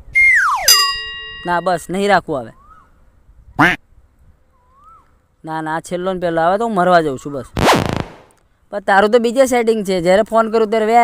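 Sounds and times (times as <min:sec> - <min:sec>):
duck quacking: 0:03.6 - 0:03.8.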